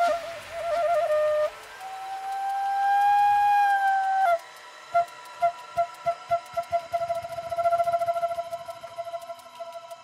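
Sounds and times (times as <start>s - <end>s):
flute playing held note: 0.0s - 10.0s.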